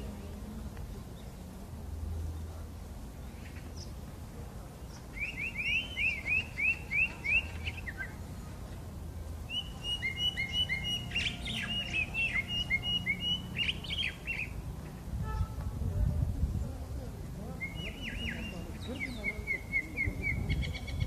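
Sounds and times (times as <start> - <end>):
blackbird singing: 4.8 - 8.8, 9.4 - 15.6, 16.5 - 21.0.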